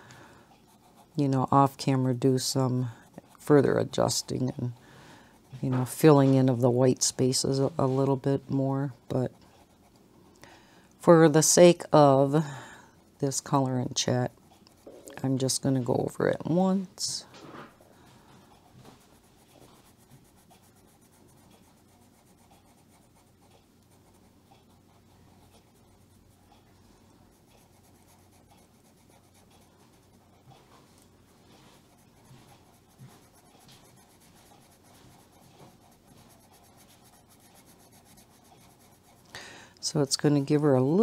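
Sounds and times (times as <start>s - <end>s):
colored pencil scratching on paper: 0.5s - 10.0s, 13.3s - 39.4s.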